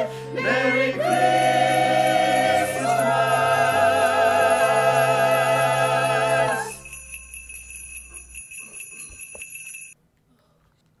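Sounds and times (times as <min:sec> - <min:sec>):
jingle bells shaken: 0:01.1 - 0:10.0.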